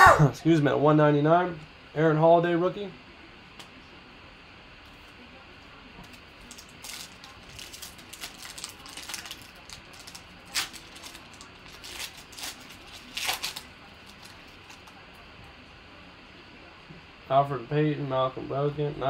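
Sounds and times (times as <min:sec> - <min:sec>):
wrapper crinkling and tearing: 0:06.1 - 0:15.0.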